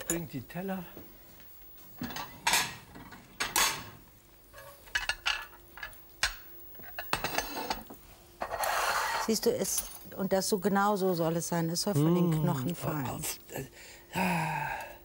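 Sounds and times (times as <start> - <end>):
ceramic plates clinking: 4.6 - 8.6
cutlery scraping on cutting board: 6.8 - 9.4.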